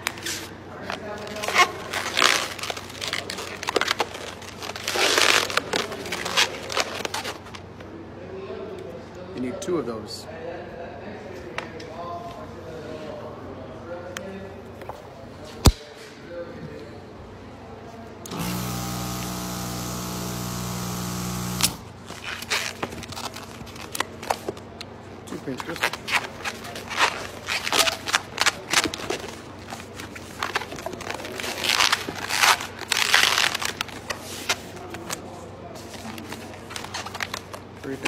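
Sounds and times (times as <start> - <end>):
electric balloon inflator running: 18.3 - 22.0.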